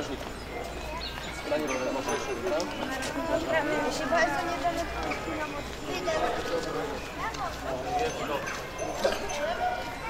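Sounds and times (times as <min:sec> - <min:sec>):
crowd voices: 0:00.0 - 0:10.0
shuffling footsteps on road: 0:00.0 - 0:10.0.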